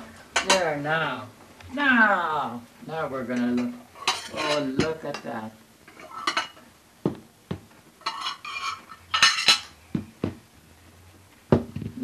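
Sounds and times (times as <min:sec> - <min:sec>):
hard object knocking: 0:07.0 - 0:07.7, 0:09.9 - 0:10.4, 0:11.5 - 0:12.0.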